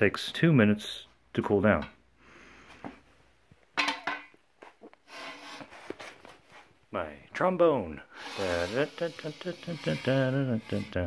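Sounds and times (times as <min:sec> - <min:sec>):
metal sliding on metal: 0:05.1 - 0:06.0, 0:08.2 - 0:11.0.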